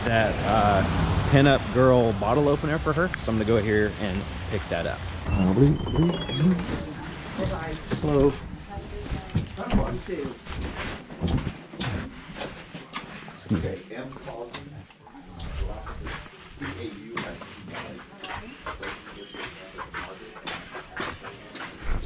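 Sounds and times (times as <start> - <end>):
footsteps: 2.6 - 22.0
door hinges squeaking: 5.2 - 6.9.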